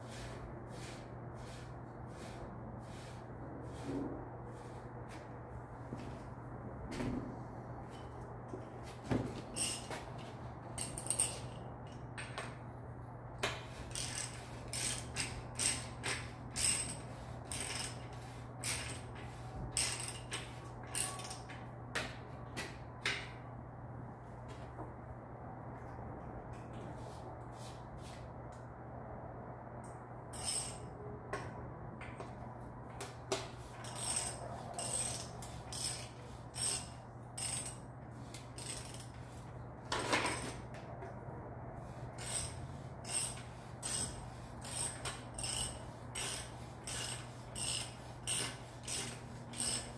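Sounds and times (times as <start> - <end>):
steady low hum: 0.0 - 49.9
small metal parts clicking and clinking: 10.8 - 12.5, 13.9 - 21.6, 30.4 - 30.9, 33.8 - 39.2.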